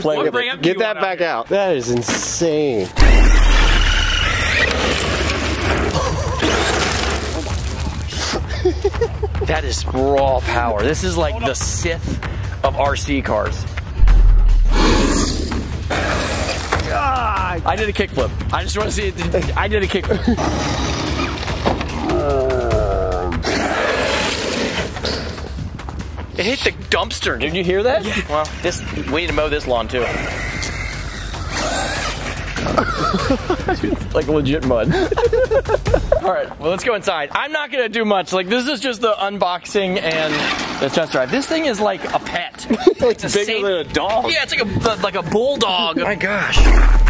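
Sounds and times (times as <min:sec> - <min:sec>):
tyres on gravel: 0:03.0 - 0:08.4.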